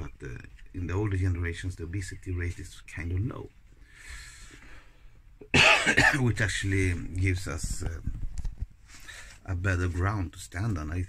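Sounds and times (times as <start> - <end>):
man coughing: 5.4 - 6.4.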